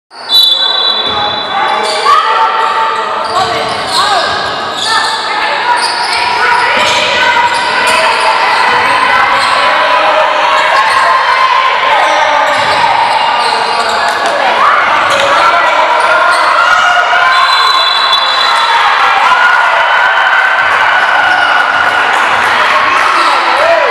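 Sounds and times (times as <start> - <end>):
referee's whistle: 0.1 - 1.6, 17.2 - 18.8
players calling out: 0.2 - 23.9
basketball bouncing on court: 12.5 - 14.3.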